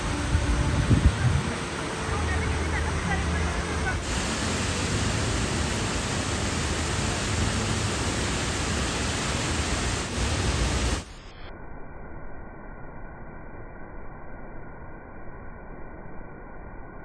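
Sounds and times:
fountain water splashing: 0:00.0 - 0:11.1
water cascade over rim: 0:00.0 - 0:11.1.

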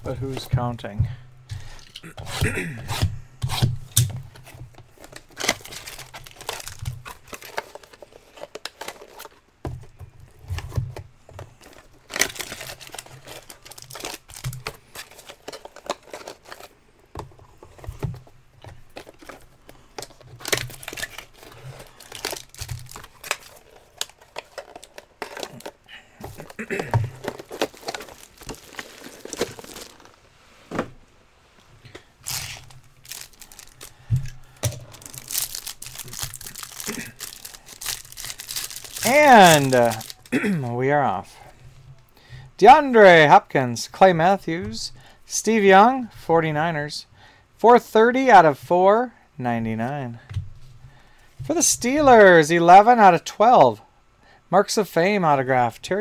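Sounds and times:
wrappers crinkling: 0:04.9 - 0:09.4, 0:11.5 - 0:16.7, 0:17.5 - 0:30.3, 0:31.8 - 0:40.4
plastic shrink-wrap tearing: 0:05.1 - 0:09.3, 0:12.0 - 0:16.7, 0:20.1 - 0:26.6, 0:27.2 - 0:30.2, 0:32.2 - 0:40.3.

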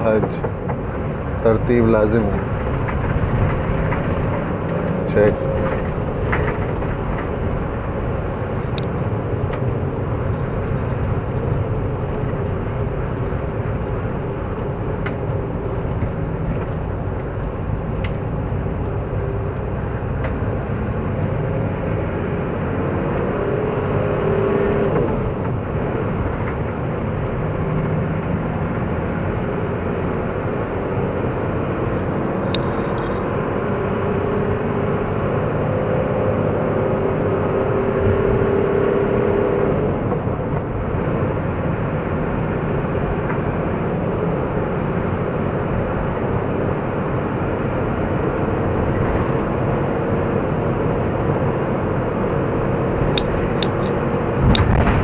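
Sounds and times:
vehicle engine and road noise: 0:00.0 - 0:55.0.

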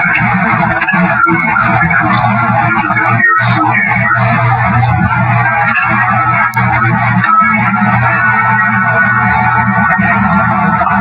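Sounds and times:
distorted droning hum: 0:00.0 - 0:11.0.

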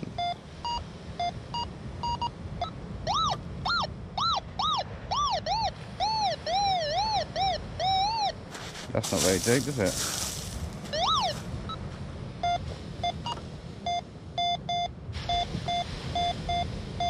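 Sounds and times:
metal detector beeps: 0:00.2 - 0:08.4, 0:09.2 - 0:11.8, 0:12.4 - 0:16.7
metal detector warbling tone: 0:03.1 - 0:08.4, 0:10.9 - 0:11.4.

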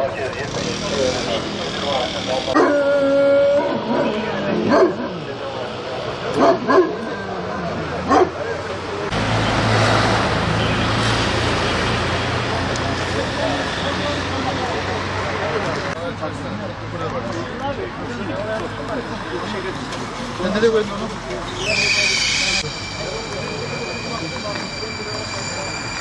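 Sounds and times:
dog barking: 0:02.6 - 0:02.8, 0:03.9 - 0:05.1, 0:06.4 - 0:07.0, 0:08.1 - 0:08.4.

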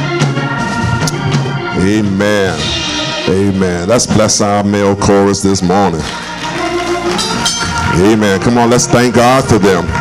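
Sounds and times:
church band held chords: 0:00.0 - 0:10.0
tambourine jingling: 0:06.9 - 0:08.0.

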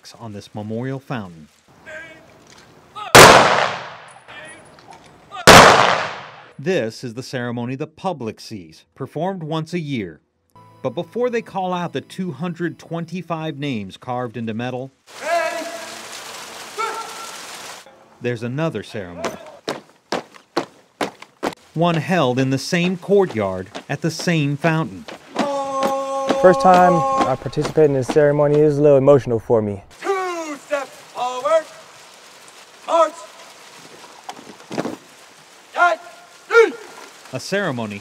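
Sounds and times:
fountain splashing: 0:00.0 - 0:04.2, 0:05.2 - 0:06.4, 0:15.0 - 0:17.9, 0:21.4 - 0:25.7, 0:29.9 - 0:38.0
person calling out: 0:01.8 - 0:02.3, 0:15.2 - 0:16.0, 0:16.8 - 0:17.3, 0:25.4 - 0:27.8, 0:30.0 - 0:31.8, 0:35.8 - 0:37.0
person shouting commands: 0:01.8 - 0:02.3, 0:03.0 - 0:03.2, 0:15.2 - 0:16.0, 0:16.8 - 0:17.3, 0:19.2 - 0:19.6, 0:25.4 - 0:28.0, 0:30.0 - 0:31.8, 0:35.8 - 0:37.0.

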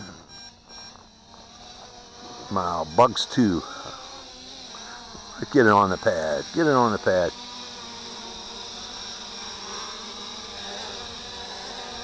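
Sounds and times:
quadcopter motors buzzing: 0:00.0 - 0:12.0.

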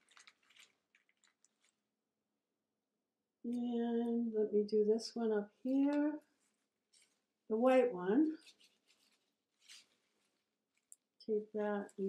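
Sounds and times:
faint paper rustle: 0:00.0 - 0:01.8, 0:05.9 - 0:07.3, 0:08.3 - 0:11.0.

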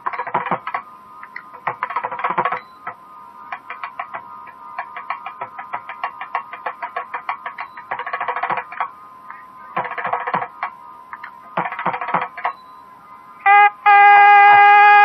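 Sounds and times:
steady drone: 0:00.0 - 0:15.0.

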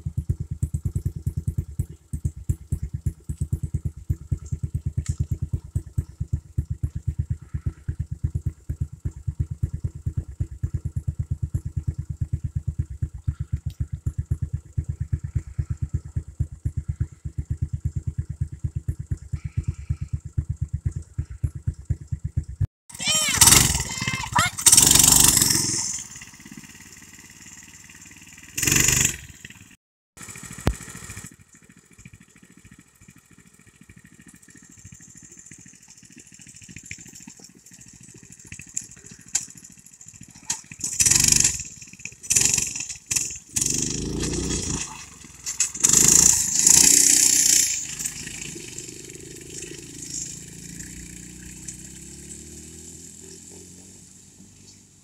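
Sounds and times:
small engine idling: 0:00.0 - 0:55.0
people shouting: 0:22.9 - 0:24.7.

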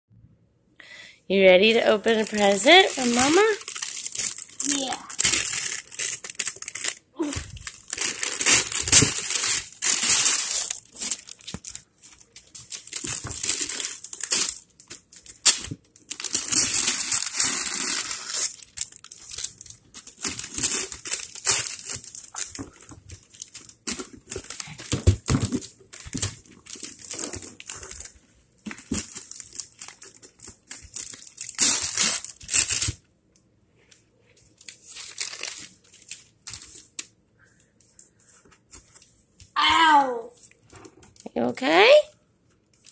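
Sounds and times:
paper crinkling and rustling: 0:02.1 - 0:33.0, 0:33.8 - 0:37.1.

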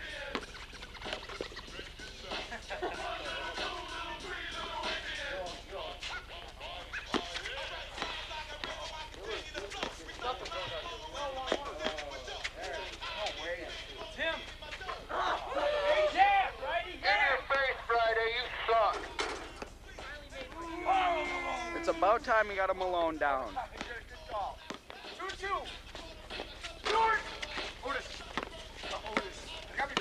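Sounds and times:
men calling and shouting: 0:00.0 - 0:30.0.

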